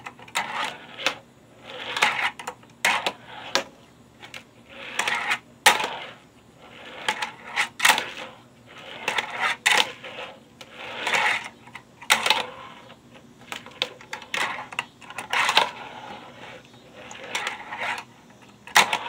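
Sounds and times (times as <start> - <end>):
tiny wheels rolling on wood: 0.1 - 19.0.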